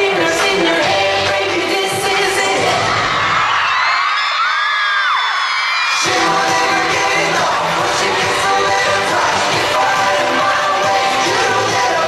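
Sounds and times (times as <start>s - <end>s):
live pop song over sound system: 0.0s - 3.9s, 5.8s - 12.0s
high screams of crowd: 2.6s - 6.2s.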